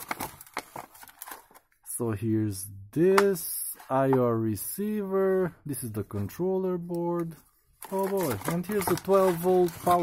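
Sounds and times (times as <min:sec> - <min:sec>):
plastic packaging crinkling: 0:00.0 - 0:01.6, 0:07.8 - 0:10.0.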